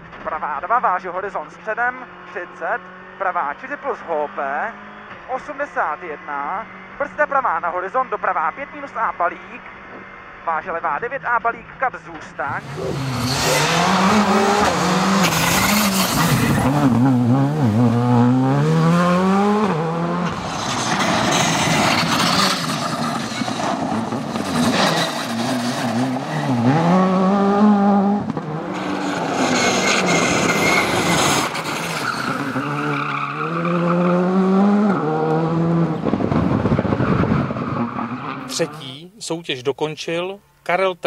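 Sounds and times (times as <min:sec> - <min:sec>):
rally car engine revving: 0:01.5 - 0:10.8, 0:12.1 - 0:38.8.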